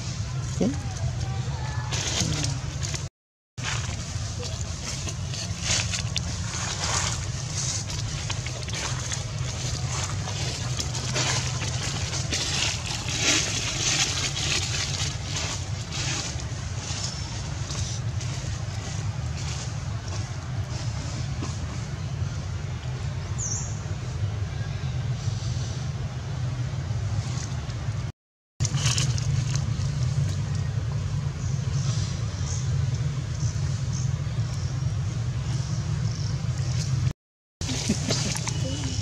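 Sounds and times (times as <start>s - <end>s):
steady low rumble: 0.0s - 39.0s.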